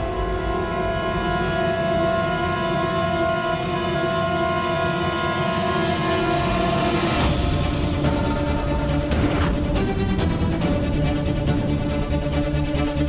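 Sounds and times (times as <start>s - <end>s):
suspenseful held chords: 0.0s - 13.0s.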